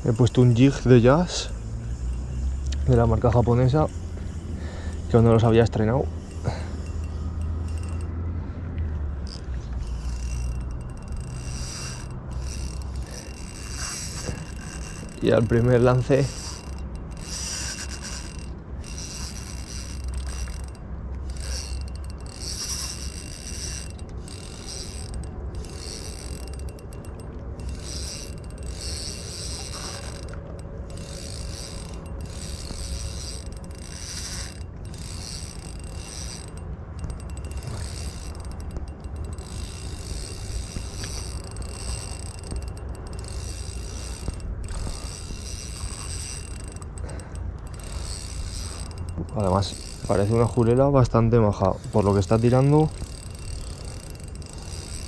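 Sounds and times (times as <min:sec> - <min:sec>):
fishing reel whirring: 0:00.0 - 0:55.0
low continuous rumble: 0:00.0 - 0:55.0.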